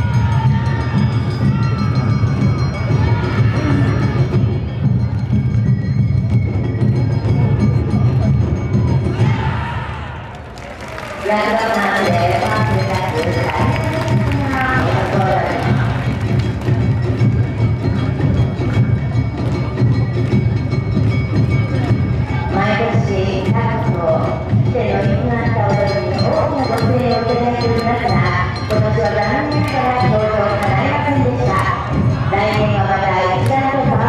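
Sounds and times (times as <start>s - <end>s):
drum and percussion band: 0.0s - 9.6s, 10.8s - 34.0s
voices calling and chanting: 11.0s - 18.4s, 21.6s - 34.0s.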